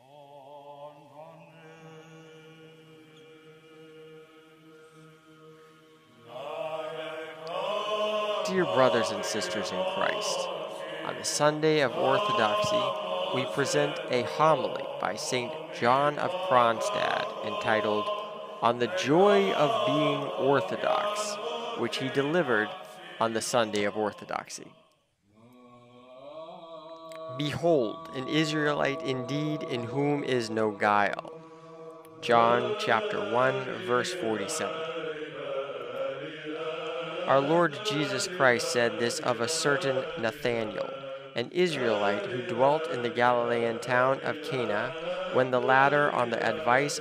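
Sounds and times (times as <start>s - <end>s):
low sung drone: 0.0s - 24.4s, 25.5s - 39.3s
slow chanted vocal line: 0.0s - 47.0s
stronger singing voice: 0.0s - 47.0s.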